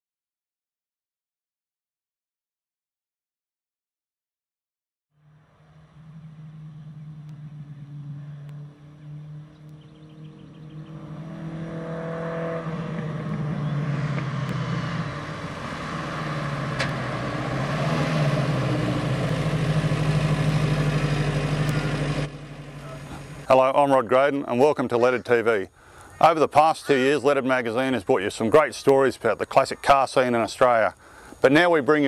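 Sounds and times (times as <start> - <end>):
car engine approaching: 5.2 - 28.1.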